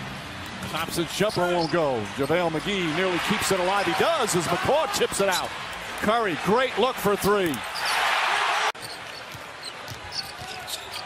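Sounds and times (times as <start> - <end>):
crowd cheering loudly: 1.8 - 8.8
basketball bouncing on court: 8.8 - 11.0.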